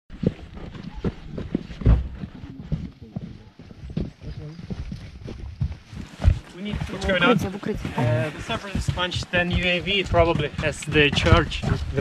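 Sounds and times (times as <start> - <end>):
footsteps and knocks in trench: 0.1 - 12.0.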